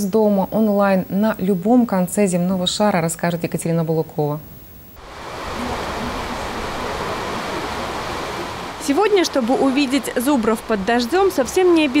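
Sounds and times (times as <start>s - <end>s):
hiss of falling rain: 4.5s - 12.0s.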